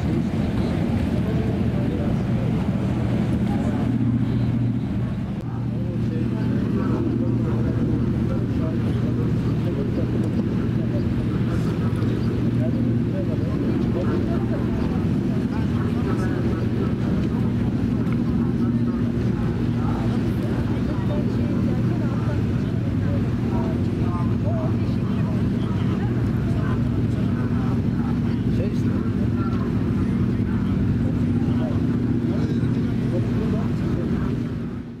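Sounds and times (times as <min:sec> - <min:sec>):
background voices chattering: 0:00.0 - 0:35.0
boat engine drone: 0:00.0 - 0:35.0.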